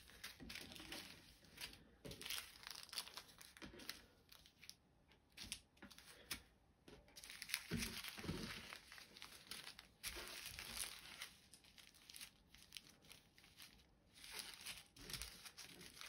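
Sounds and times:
plastic bags crinkling: 0.0 - 6.3, 7.2 - 16.0.

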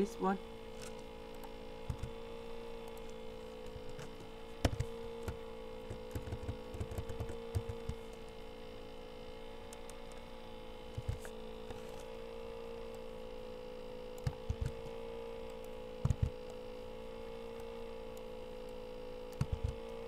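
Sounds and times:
steady electrical hum: 0.0 - 20.0
computer mouse clicks: 0.8 - 2.2, 2.8 - 8.4, 9.7 - 10.2, 10.9 - 12.1, 14.1 - 16.6, 17.5 - 20.0.

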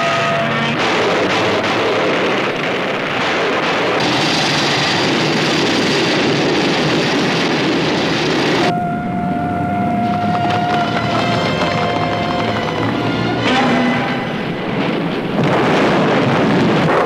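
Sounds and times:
orchestral music: 8.7 - 15.3.

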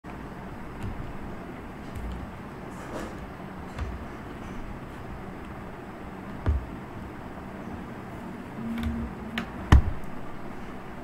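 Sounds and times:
low background rumble and hiss: 0.1 - 11.0.

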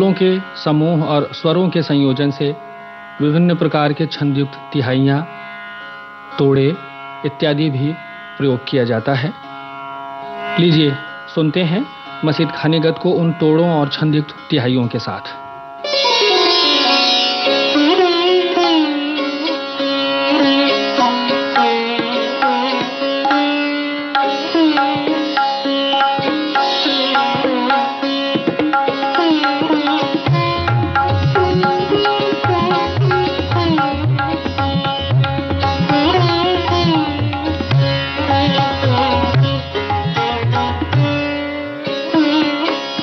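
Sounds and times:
sitar plucking: 0.0 - 43.0.

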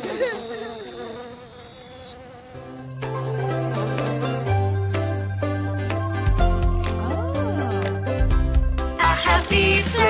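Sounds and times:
cartoon bee buzz: 0.0 - 8.2
light music: 2.6 - 10.0
children's song singing: 9.0 - 10.0.

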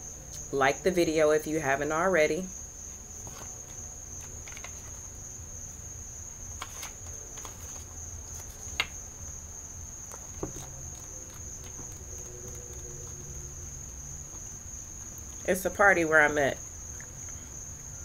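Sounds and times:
cards being shuffled: 3.2 - 5.1, 6.6 - 9.0, 10.1 - 13.2.

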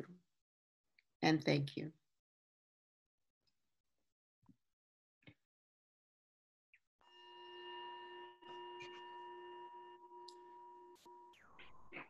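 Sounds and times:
singing bowl ringing: 7.0 - 11.4.

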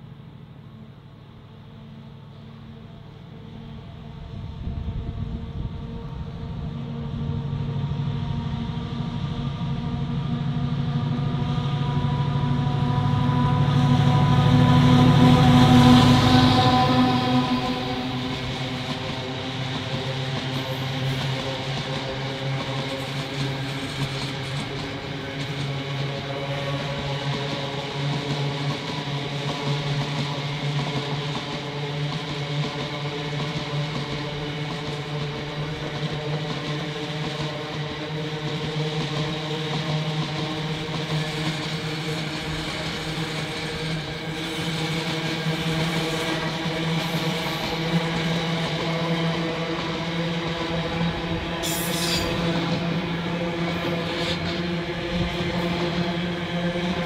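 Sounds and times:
train wheels rumbling on rails: 1.7 - 57.0.

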